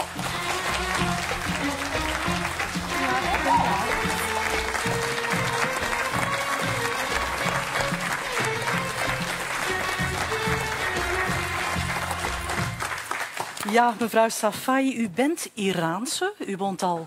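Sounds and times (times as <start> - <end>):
walk-on music with steady beat: 0.0 - 13.1
audience applauding: 0.0 - 14.2.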